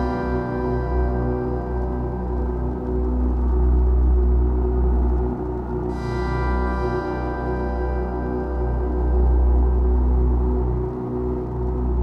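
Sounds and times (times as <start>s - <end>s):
deep synthesizer drone: 0.0s - 12.0s.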